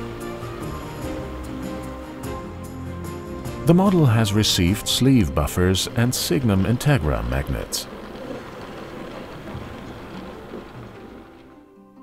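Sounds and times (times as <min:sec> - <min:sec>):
model train rumbling on rails: 0:00.0 - 0:11.6.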